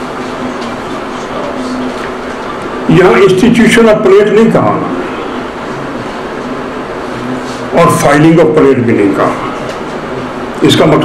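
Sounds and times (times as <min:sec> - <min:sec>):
lecture hall hiss and hum: 0:00.0 - 0:11.0.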